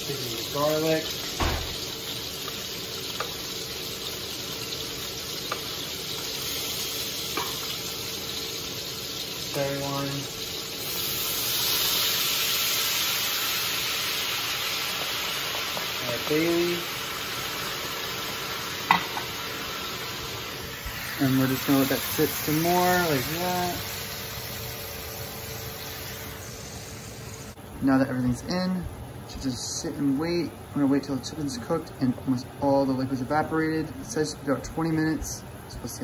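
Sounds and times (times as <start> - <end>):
chicken frying in hot oil: 0.0 - 27.6.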